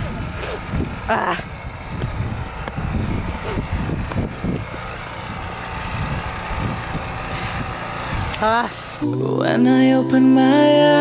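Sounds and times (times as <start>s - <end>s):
wind buffeting microphone: 0.0s - 8.7s.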